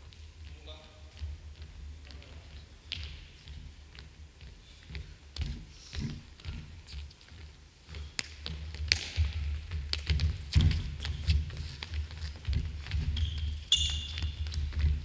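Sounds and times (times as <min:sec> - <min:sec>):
footsteps on wooden floor: 0:00.0 - 0:15.0
shoe squeak: 0:10.6 - 0:11.5, 0:12.9 - 0:15.0.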